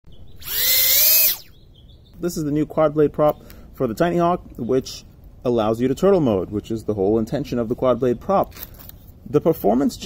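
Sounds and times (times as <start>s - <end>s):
drone motors whining: 0.4s - 1.6s.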